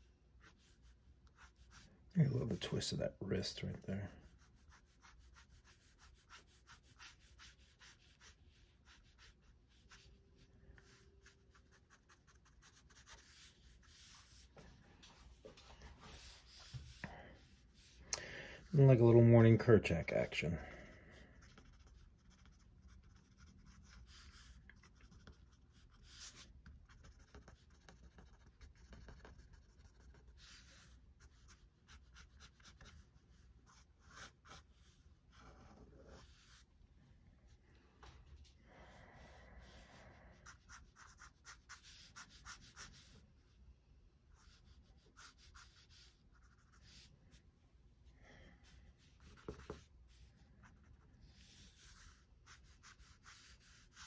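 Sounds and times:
pen scratching on paper: 0.4s - 2.8s, 3.4s - 14.5s, 16.1s - 18.0s, 21.4s - 36.7s, 39.2s - 43.1s, 44.4s - 47.1s, 48.6s - 54.0s.

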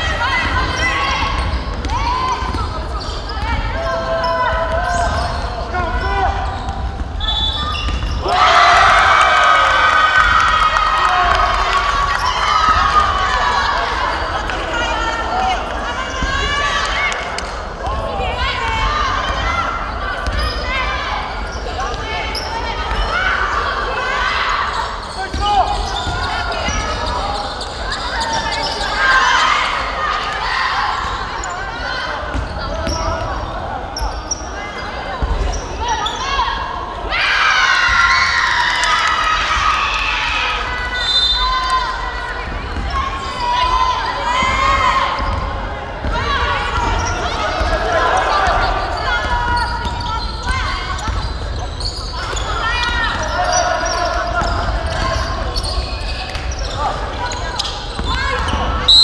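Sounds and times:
players shouting: 0.0s - 59.0s.

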